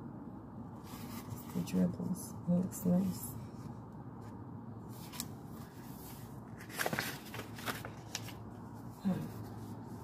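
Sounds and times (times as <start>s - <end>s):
book pages turning: 0.8s - 1.7s, 4.2s - 10.0s.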